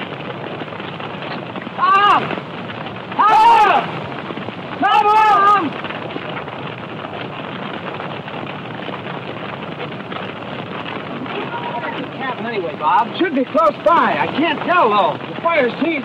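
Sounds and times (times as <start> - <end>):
fire crackling: 0.0 - 16.0.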